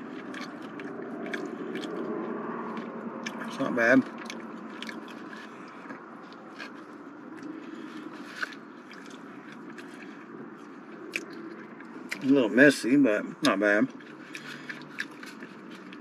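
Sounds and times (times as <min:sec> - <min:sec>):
person chewing food: 0:00.0 - 0:12.4, 0:13.4 - 0:16.0.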